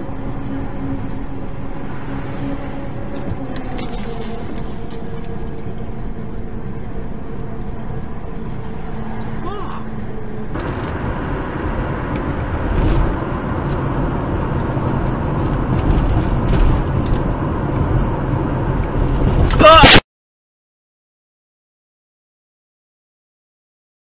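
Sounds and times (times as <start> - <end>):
car engine and road drone: 0.0 - 20.0.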